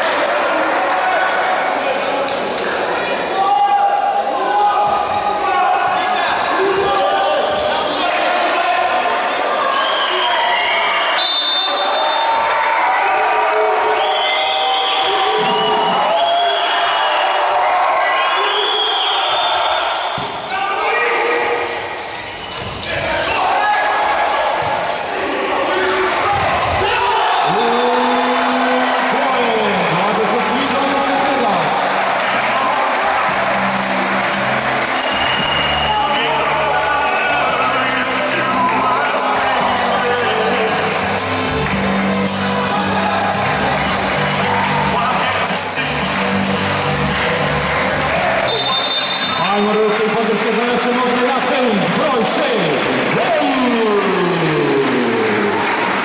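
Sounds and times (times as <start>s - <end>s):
shoes squeaking on court floor: 21.5s - 23.4s
people shouting: 22.8s - 29.3s.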